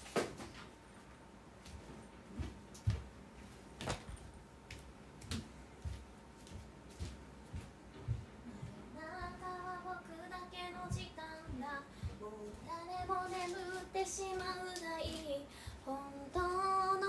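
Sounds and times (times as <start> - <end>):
woman singing slow melody: 8.4 - 17.0.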